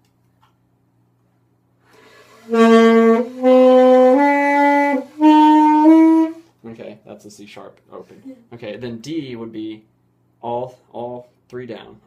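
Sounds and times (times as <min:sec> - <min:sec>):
alto saxophone held notes: 0:02.0 - 0:06.4.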